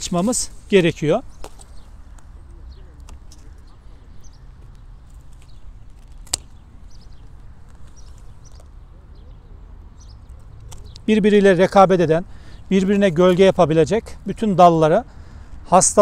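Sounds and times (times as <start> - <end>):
branches rustling: 0.0 - 9.0
secateurs snipping cane: 5.2 - 6.8.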